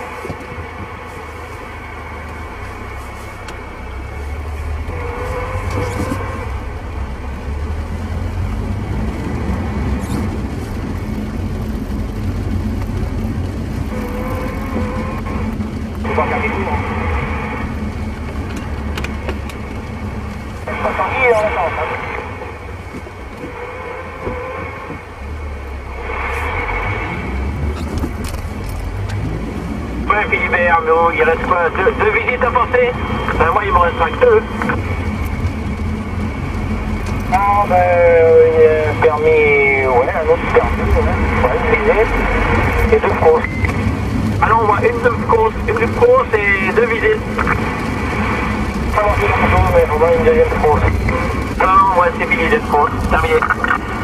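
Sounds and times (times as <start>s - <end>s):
road noise: 0.0s - 54.0s
vehicle engine rumble: 0.0s - 54.0s
garbled radio voices and hiss: 13.9s - 17.7s, 20.6s - 22.6s, 30.1s - 35.0s, 37.3s - 54.0s.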